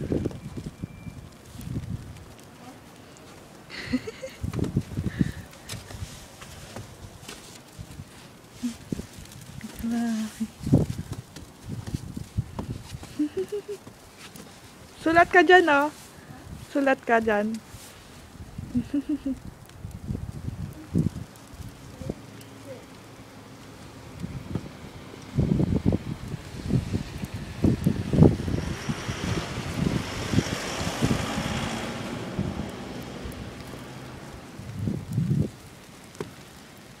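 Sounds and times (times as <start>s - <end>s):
wind buffeting microphone: 0.0s - 2.5s, 3.9s - 22.4s, 23.9s - 36.9s
footsteps on snowy stairs: 5.6s - 9.1s
broad rushing noise: 20.8s - 36.0s.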